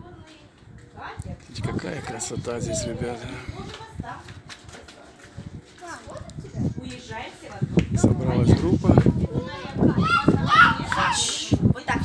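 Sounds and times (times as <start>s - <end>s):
people chattering: 0.0s - 12.0s
child talking: 5.8s - 6.8s, 9.2s - 12.0s.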